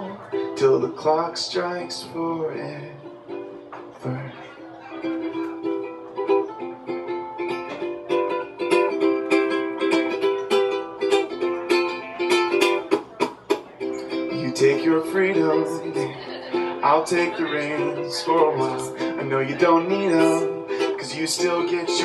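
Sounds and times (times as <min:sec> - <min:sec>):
ukulele strumming: 0:00.0 - 0:22.0.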